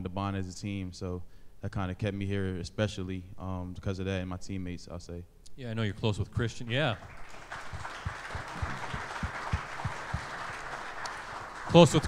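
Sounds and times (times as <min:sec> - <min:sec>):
light applause: 0:06.7 - 0:12.0.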